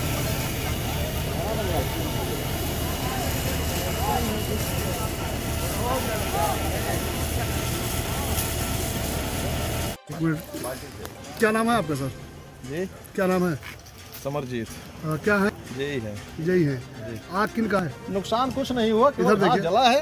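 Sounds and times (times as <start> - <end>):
men talking: 0.0 - 9.2, 10.0 - 20.0
pump motor running: 0.0 - 10.0
hose spraying water: 0.0 - 12.1.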